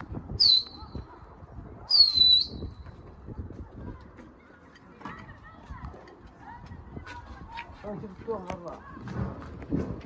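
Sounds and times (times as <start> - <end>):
loud high-pitched human whistles: 0.4 - 0.9, 1.9 - 2.8.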